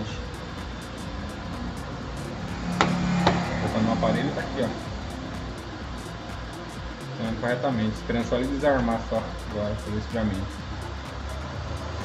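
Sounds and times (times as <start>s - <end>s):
projector cooling fan running: 0.0s - 12.0s.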